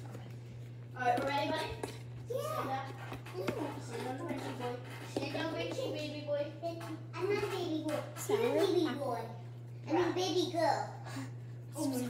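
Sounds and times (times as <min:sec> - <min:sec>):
steady low hum: 0:00.0 - 0:12.0
girl talking: 0:01.0 - 0:12.0.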